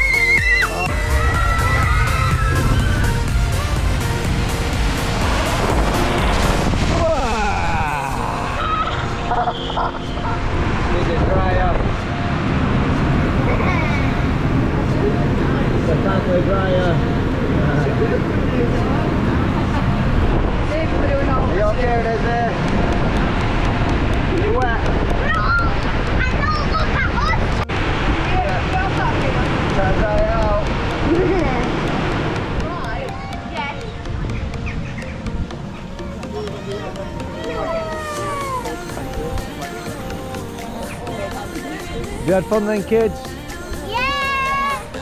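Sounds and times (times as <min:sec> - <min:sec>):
blower rushing air: 0:00.0 - 0:09.3
background music: 0:00.0 - 0:26.6, 0:27.2 - 0:45.0
children's voices: 0:25.0 - 0:27.8, 0:35.6 - 0:39.2, 0:43.7 - 0:45.0.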